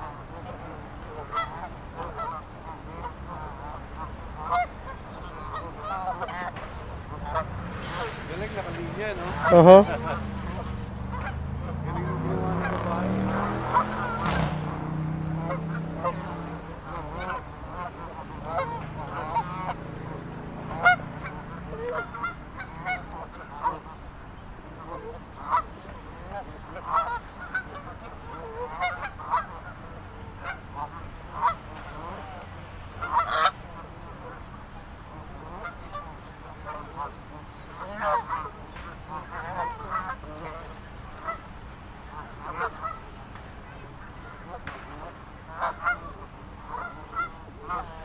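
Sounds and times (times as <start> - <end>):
geese honking: 0.0 - 48.0.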